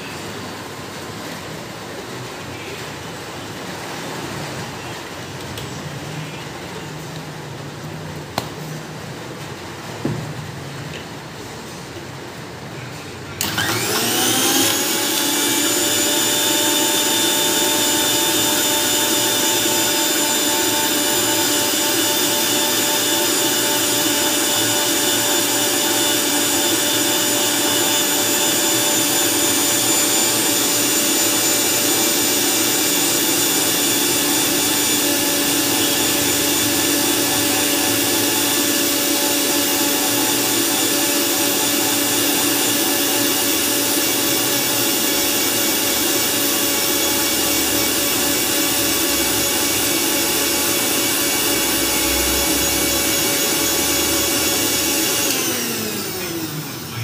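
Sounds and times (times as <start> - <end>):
mixer grinder motor whining: 13.4 - 57.0.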